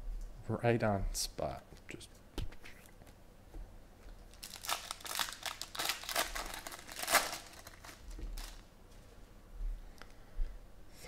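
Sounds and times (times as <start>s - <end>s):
foil wrapper crinkling: 4.2s - 8.7s.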